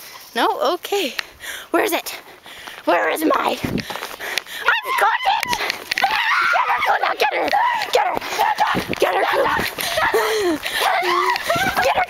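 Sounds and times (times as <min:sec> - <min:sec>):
person crying out: 0:04.6 - 0:12.0.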